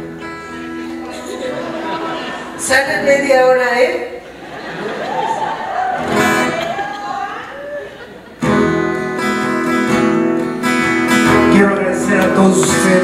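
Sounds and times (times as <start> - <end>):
guitar chords ringing: 0.0 - 3.6, 8.4 - 13.0
voices talking on stage: 0.8 - 8.3, 11.3 - 13.0.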